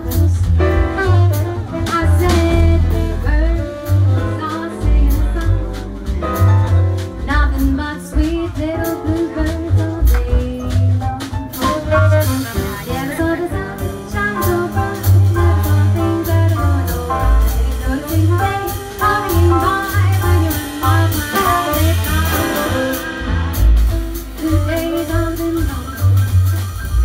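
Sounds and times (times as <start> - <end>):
woman singing: 0.0 - 6.2, 7.2 - 23.1, 24.2 - 27.0
double bass: 0.0 - 27.0
drum kit with cymbals: 0.0 - 27.0
grand piano: 0.0 - 27.0.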